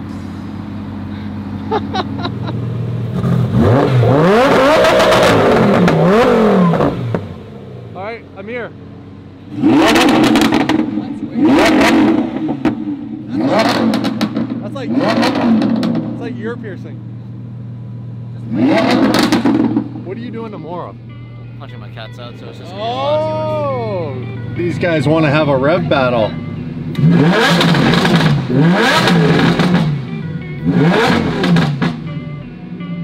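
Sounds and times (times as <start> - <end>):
sports car engine idling: 0.0 - 21.9, 22.5 - 33.0
engine revving: 2.3 - 8.0, 9.5 - 17.6, 18.3 - 20.6, 24.1 - 33.0.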